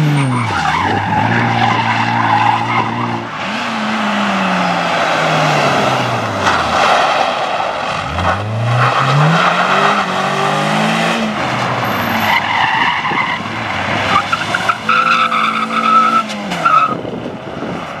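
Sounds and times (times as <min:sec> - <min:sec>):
car engine revving hard: 0:00.0 - 0:17.1.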